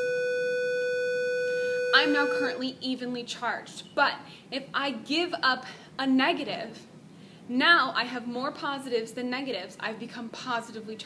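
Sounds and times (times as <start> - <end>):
steady electronic tone: 0.0 - 2.7.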